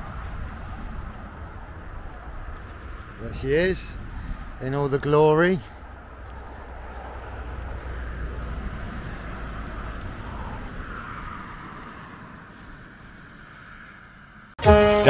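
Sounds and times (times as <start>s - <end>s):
distant vehicle rumble: 0.0s - 14.6s.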